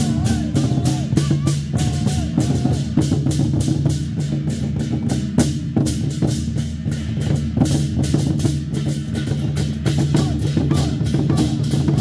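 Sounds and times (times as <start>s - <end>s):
hand cymbals clashing: 0.0s - 12.0s
war drums beaten in rhythm: 0.0s - 12.0s.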